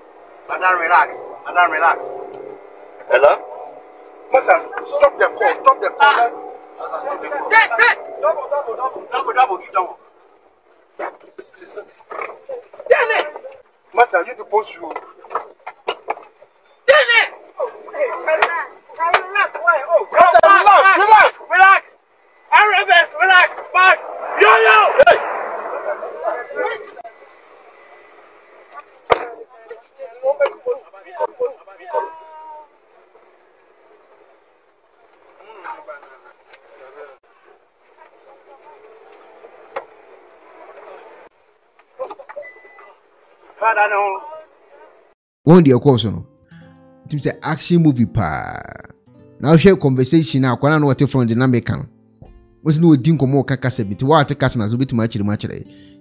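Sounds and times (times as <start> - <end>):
loud cry: 16.9 - 21.9
frightened people shouting: 16.9 - 27.0
low steady bus cabin noise: 26.3 - 45.2.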